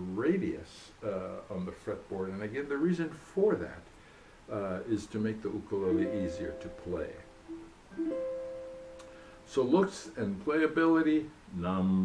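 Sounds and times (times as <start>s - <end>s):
plucked ukulele notes: 5.8s - 9.5s.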